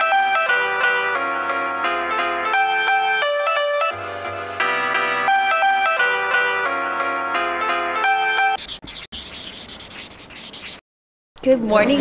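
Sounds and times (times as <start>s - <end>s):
pen scratching on paper: 8.5s - 10.8s.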